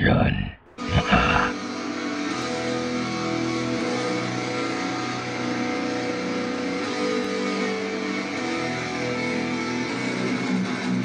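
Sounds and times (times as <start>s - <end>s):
distorted electric guitar chords: 0.6s - 11.0s.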